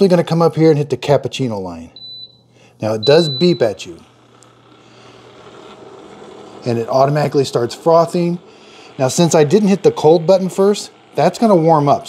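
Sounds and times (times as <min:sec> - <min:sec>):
milk frother whirring: 0:00.0 - 0:12.0.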